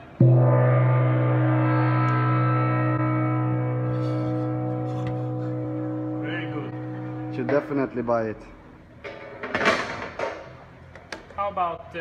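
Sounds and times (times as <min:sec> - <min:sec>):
gong ringing with deep hum: 0:00.2 - 0:09.0.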